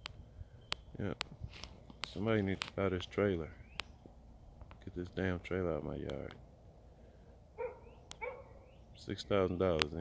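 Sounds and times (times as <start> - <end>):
dog barking: 7.6 - 8.6.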